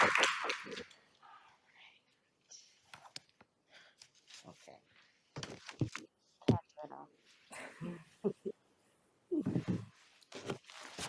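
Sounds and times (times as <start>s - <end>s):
person murmuring faintly: 6.4s - 8.6s, 9.3s - 10.0s.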